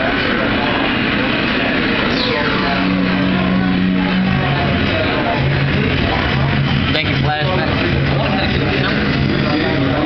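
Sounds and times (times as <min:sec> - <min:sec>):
held low note: 0:00.0 - 0:10.0
many people talking: 0:00.0 - 0:10.0
steady noisy roar: 0:00.0 - 0:10.0.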